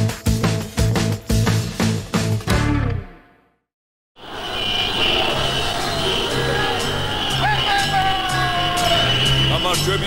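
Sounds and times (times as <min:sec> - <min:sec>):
theme music: 0:00.0 - 0:03.6, 0:04.3 - 0:10.0.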